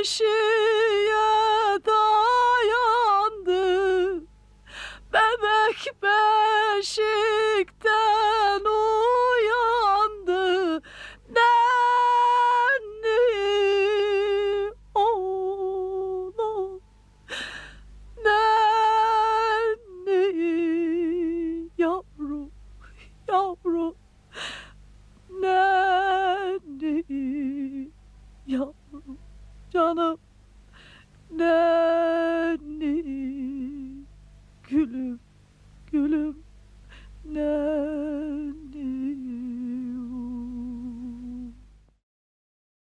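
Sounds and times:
woman humming a melody: 0.0 - 24.4, 25.3 - 30.2, 31.3 - 35.2, 35.8 - 36.5, 37.2 - 41.7.

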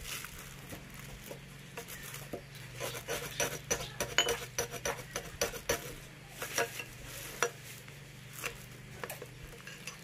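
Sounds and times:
knife clicking and scraping: 2.8 - 7.6.

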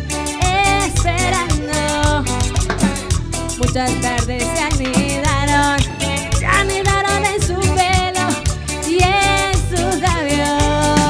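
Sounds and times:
hand drums: 0.0 - 11.0
latin dance band playing: 0.0 - 11.0.

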